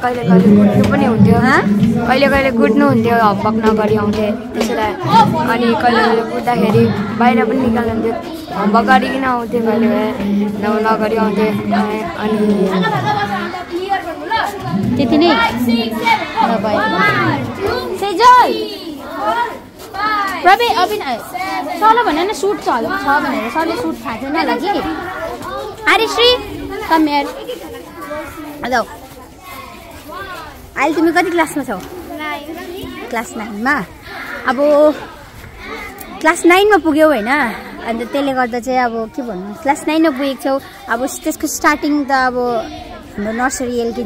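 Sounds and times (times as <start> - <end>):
woman speaking: 0.0 - 18.5
children chattering and calling: 0.0 - 44.0.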